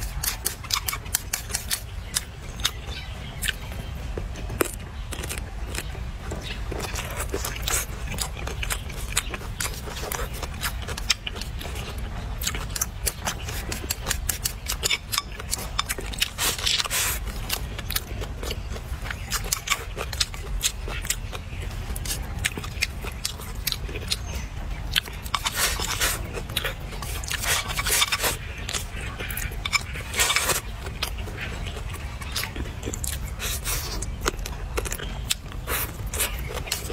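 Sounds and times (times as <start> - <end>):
person chewing crunchy greens: 0.0 - 36.9
steady low rumble: 0.0 - 36.9.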